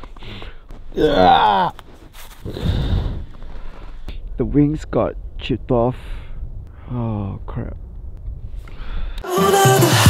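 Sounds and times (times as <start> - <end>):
handling noise rustling in snow: 1.6 - 4.1.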